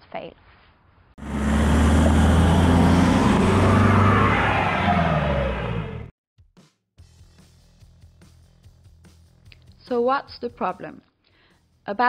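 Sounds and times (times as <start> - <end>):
car engine revving: 1.2 - 6.1.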